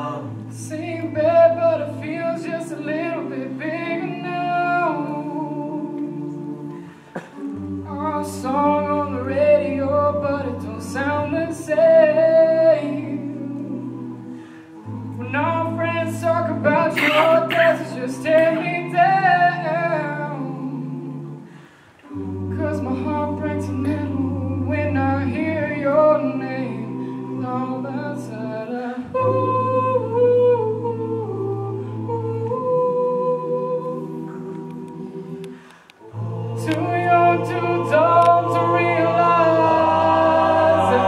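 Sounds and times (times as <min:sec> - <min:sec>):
male backing harmonies: 0:00.0 - 0:41.0
man singing lead note: 0:16.7 - 0:17.8.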